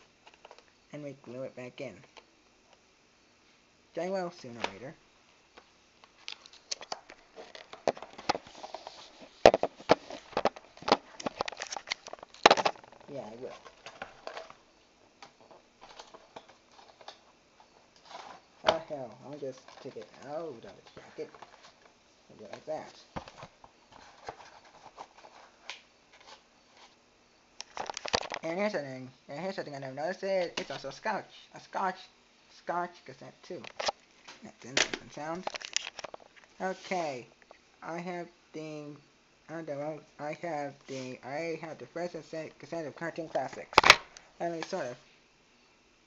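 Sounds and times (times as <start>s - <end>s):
cardboard sleeve rustling: 6.1s - 14.6s, 18.0s - 27.0s
plastic cassette clicks and knocks: 9.5s - 13.0s.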